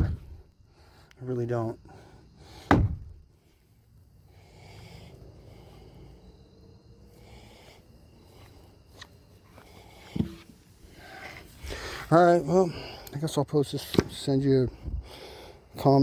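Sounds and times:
dull knock: 2.7 - 3.1
person breathing through nose: 3.4 - 8.9, 9.5 - 12.1, 15.0 - 15.7.

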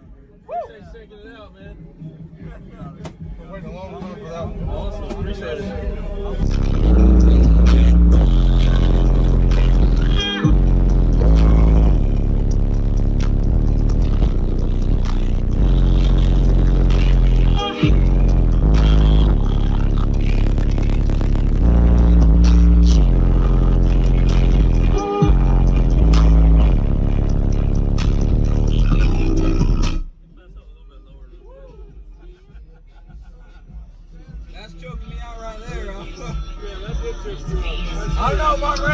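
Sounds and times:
bass-heavy music through car speakers: 0.0 - 38.9.

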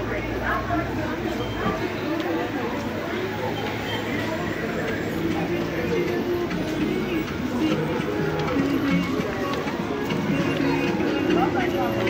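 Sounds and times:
people talking: 0.0 - 12.0
music playing: 3.4 - 12.0.

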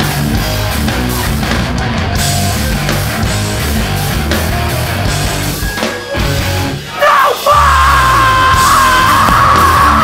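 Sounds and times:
punk band playing live: 0.0 - 10.0
long high held yell: 6.9 - 10.0.

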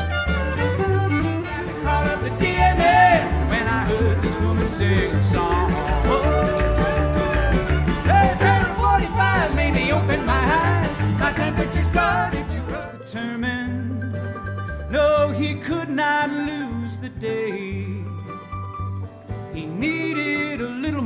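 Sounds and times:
fiddle lead: 0.0 - 20.7
acoustic guitar: 0.0 - 21.0
upright bass: 0.0 - 21.0.

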